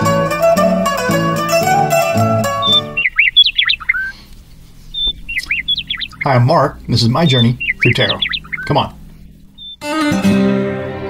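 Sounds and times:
plucked-string music: 0.0 - 3.0, 9.8 - 11.0
bird chirping: 1.7 - 9.8.

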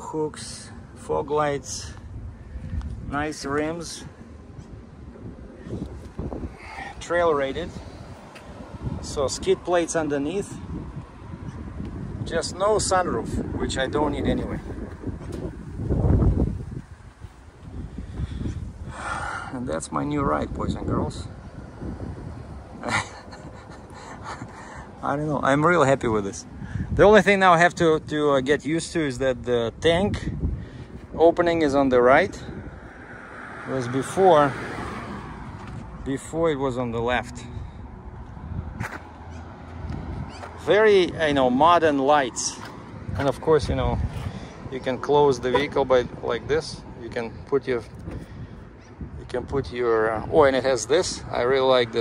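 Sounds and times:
low street rumble: 0.0 - 52.0
wind buffeting microphone: 0.8 - 52.0.

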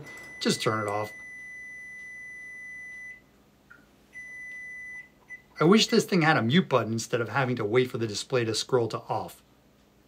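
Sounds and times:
microwave high-pitched beep: 0.0 - 5.6.

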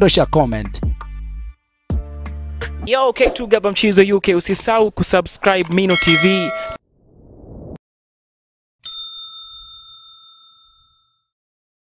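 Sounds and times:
bright ding chime: 5.9 - 6.8, 8.8 - 11.3.

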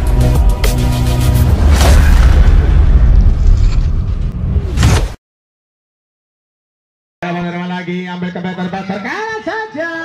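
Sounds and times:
cinematic boom hit: 1.4 - 5.0.

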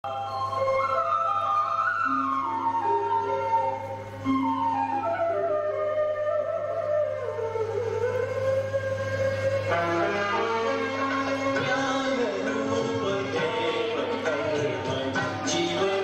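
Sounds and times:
slow flute-like melody: 0.0 - 14.3.

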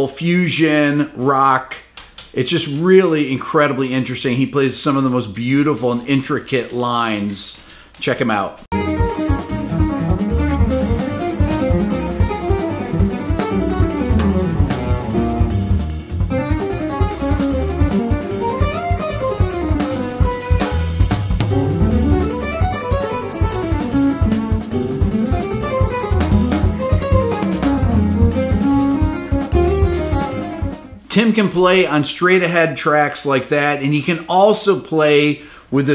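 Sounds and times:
electric guitar fast fusion lines: 8.7 - 30.9
backing track with bass and drums: 8.7 - 31.8.

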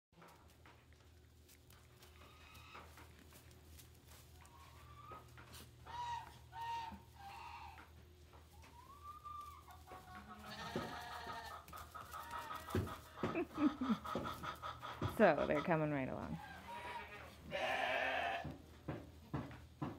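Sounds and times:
goat kids bleating: 10.0 - 13.2, 16.5 - 18.6.

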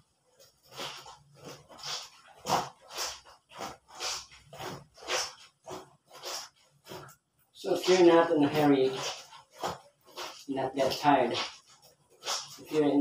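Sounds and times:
wet clothes scrubbed by hand: 0.2 - 13.0.

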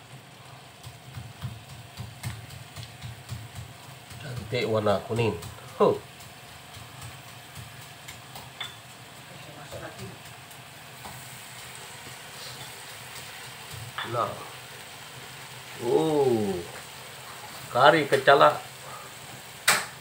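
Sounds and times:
curry sizzling in a wok: 0.0 - 20.0
spatula knocking: 0.8 - 8.9.

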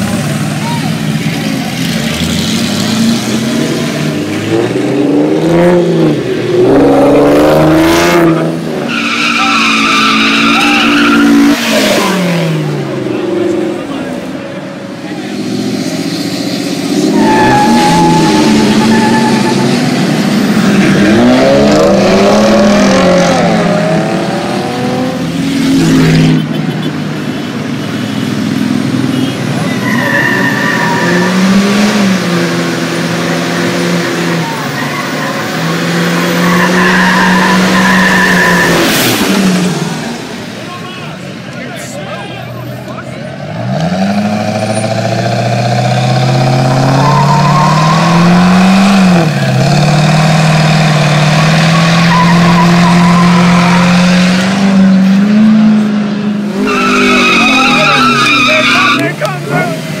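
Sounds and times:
car engine revving: 0.0 - 40.6, 43.3 - 60.0
tyres squealing: 8.9 - 12.4, 16.9 - 20.2, 29.6 - 31.8, 34.2 - 39.0, 46.0 - 48.7, 51.3 - 55.1, 56.6 - 59.8.

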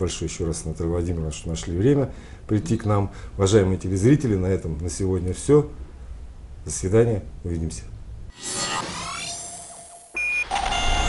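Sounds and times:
short high beep: 10.1 - 11.0.

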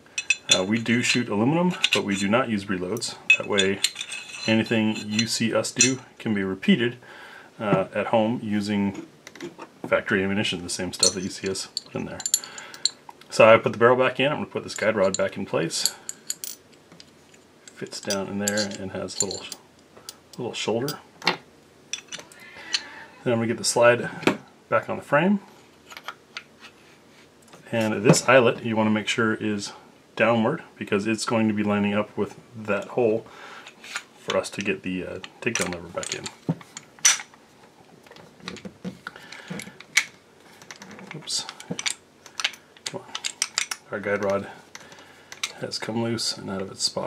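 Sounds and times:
light metal rattles: 14.8 - 19.6.

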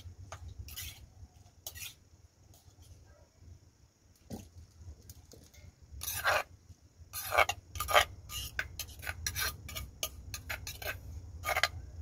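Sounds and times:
spoon scraping mortar: 0.0 - 3.0, 6.0 - 6.5, 7.1 - 11.8.

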